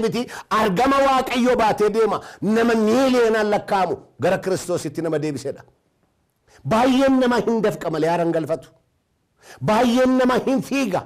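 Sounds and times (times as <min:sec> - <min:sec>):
man preaching: 0:00.0 - 0:05.7, 0:06.5 - 0:08.8, 0:09.4 - 0:11.0.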